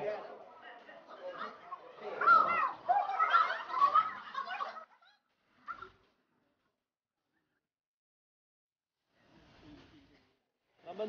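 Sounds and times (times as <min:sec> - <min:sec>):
people talking: 0:00.0 - 0:04.9.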